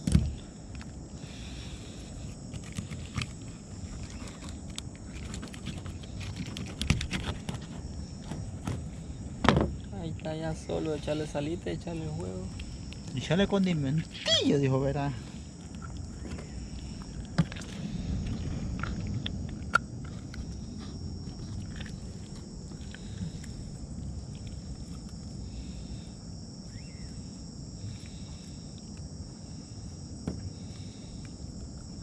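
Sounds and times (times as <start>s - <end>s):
crickets chirping: 0.0s - 32.0s
low rumbling background noise: 0.0s - 32.0s.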